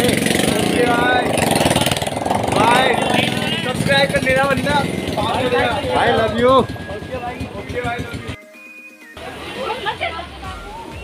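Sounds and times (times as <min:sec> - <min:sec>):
people talking: 0:00.0 - 0:01.7, 0:02.3 - 0:08.4, 0:09.2 - 0:11.0
rapid mechanical buzz: 0:00.0 - 0:08.4.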